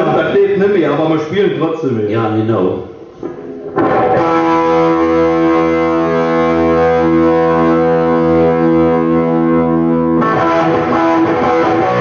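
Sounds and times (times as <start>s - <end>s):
distorted electric guitar chord: 3.2s - 12.0s.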